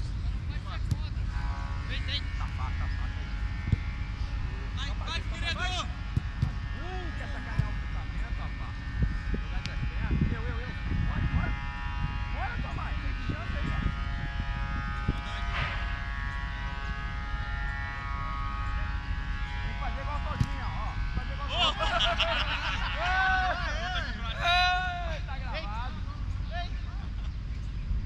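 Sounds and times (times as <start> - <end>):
low rumble: 0.0 - 21.5
faint hum: 0.0 - 28.0
distant players shouting: 1.0 - 8.8.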